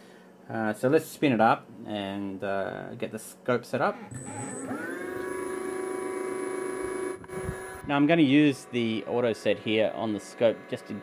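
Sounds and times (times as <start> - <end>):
electric motor whining: 4.1 - 11.0.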